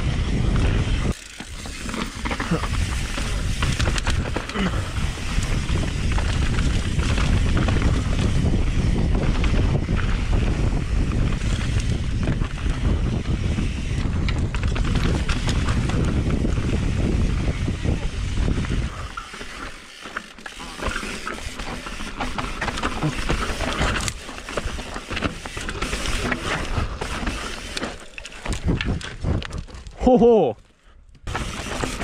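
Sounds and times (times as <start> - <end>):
wind buffeting microphone: 0.0 - 1.7, 2.4 - 19.4, 28.4 - 30.0
bike rattles and knocks: 0.0 - 30.4, 31.2 - 32.0
bike tyres rolling on dirt: 0.0 - 32.0.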